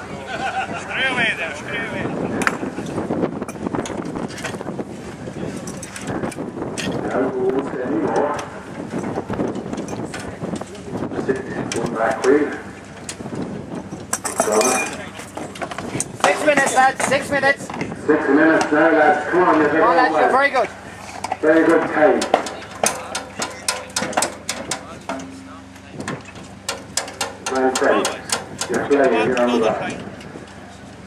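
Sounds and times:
spanners and steel parts clinking: 5.6s - 6.2s, 13.8s - 17.2s, 22.2s - 29.2s
voices calling out: 9.8s - 31.0s.

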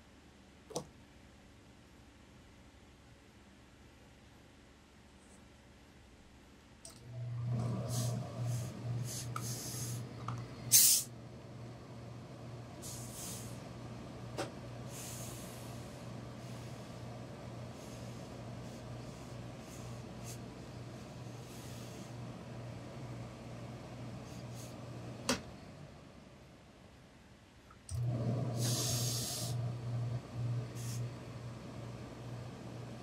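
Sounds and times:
steady low hum: 0.0s - 33.0s
steam iron hissing: 7.9s - 10.0s, 10.7s - 11.1s, 12.8s - 13.6s, 14.9s - 17.0s, 28.5s - 29.7s, 30.7s - 31.1s.

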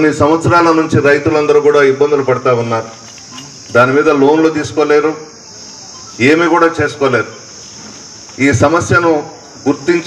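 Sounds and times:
man speaking into a microphone: 0.0s - 3.0s, 3.7s - 5.3s, 6.2s - 7.4s, 8.4s - 10.0s
steady high-pitched hiss: 0.0s - 10.0s.

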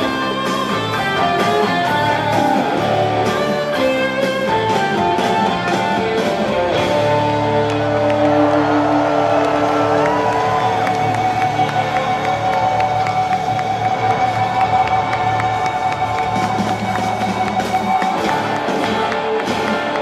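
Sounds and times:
rock band sustained chord: 0.0s - 12.6s
crowd cheering and whooping: 0.0s - 20.0s.

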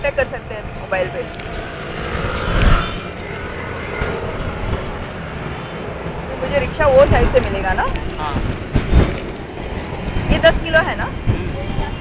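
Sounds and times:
roadside traffic rumble: 0.0s - 12.0s.

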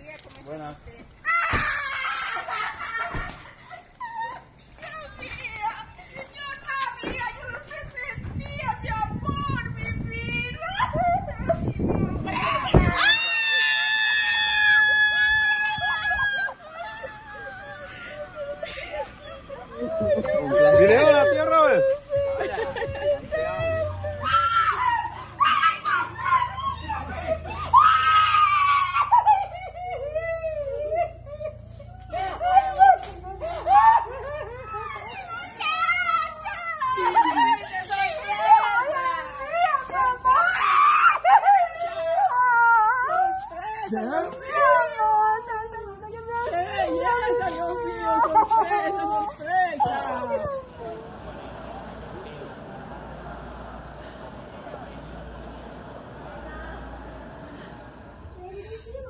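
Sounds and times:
voices: 0.0s - 59.0s
woman sobbing cry: 3.7s - 5.2s, 14.9s - 25.3s, 28.6s - 51.0s
woman screaming: 12.4s - 18.7s, 32.4s - 50.8s.

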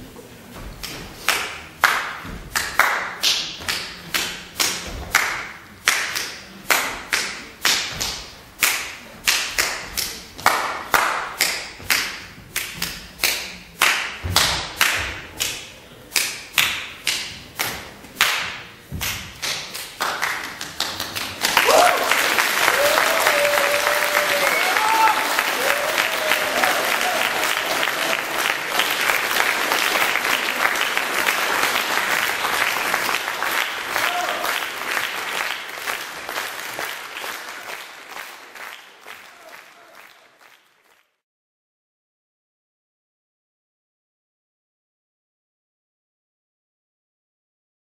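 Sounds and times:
audience applause and cheers: 21.3s - 41.1s.

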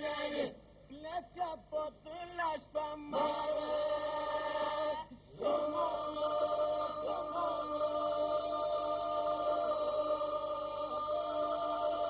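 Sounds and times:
group singing a drone: 0.0s - 0.6s, 3.1s - 12.0s
solo voices singing a melody: 0.0s - 0.6s, 3.1s - 12.0s.

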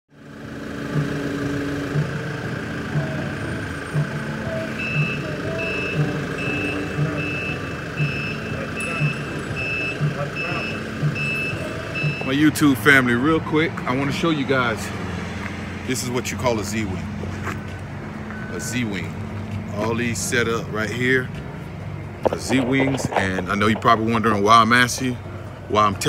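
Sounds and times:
vehicle noise: 0.1s - 26.0s
reversing alarm beeping: 0.9s - 12.9s, 18.3s - 19.2s.

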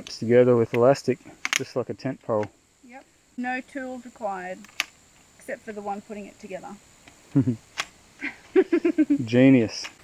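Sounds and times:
camp chair pole click: 0.7s - 2.5s
people laughing: 7.4s - 7.6s, 8.2s - 9.4s.

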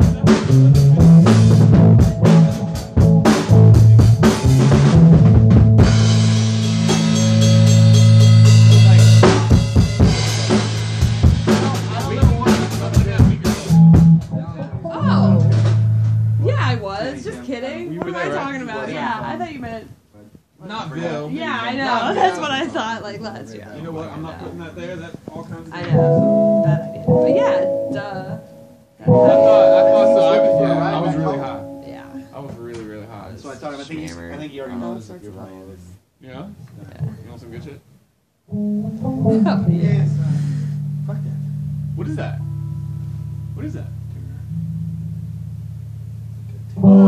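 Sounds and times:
guitar chord ringing: 6.0s - 10.4s, 14.8s - 16.8s, 25.8s - 32.5s, 38.5s - 47.0s
person talking: 25.8s - 32.3s.

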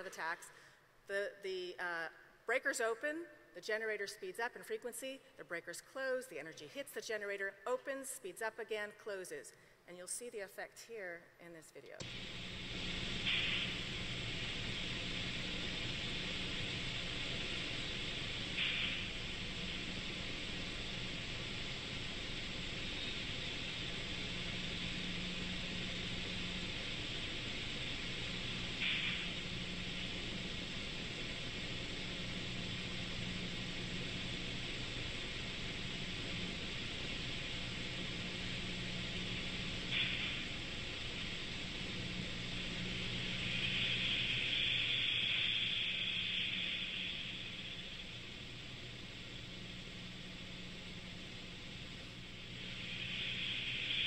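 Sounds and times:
steady hum and hiss: 0.0s - 54.0s.

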